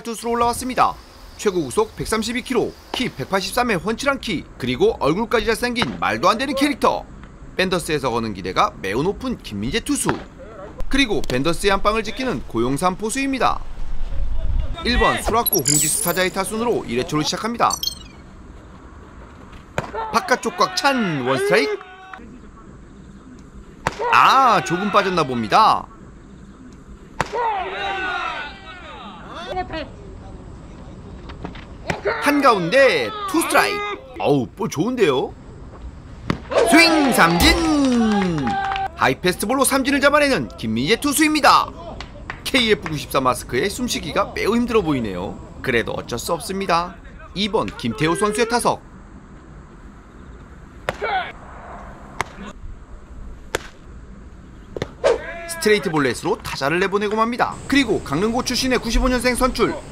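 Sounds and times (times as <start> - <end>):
players calling out: 36.5 - 48.8, 50.8 - 51.4
person shouting: 36.6 - 38.9, 55.2 - 55.8
baseball popping into catcher's mitt: 52.2 - 52.4, 53.5 - 53.8, 54.7 - 55.0.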